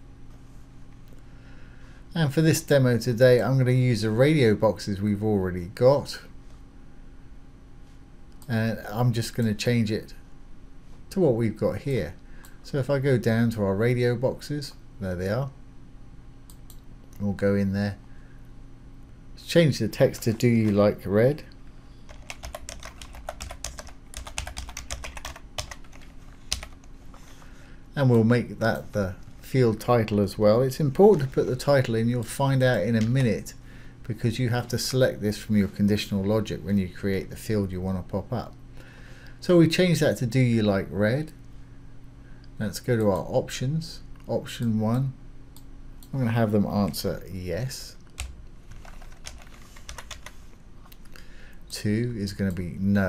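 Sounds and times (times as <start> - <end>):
computer keyboard typing: 22.1 - 26.9, 48.2 - 50.4.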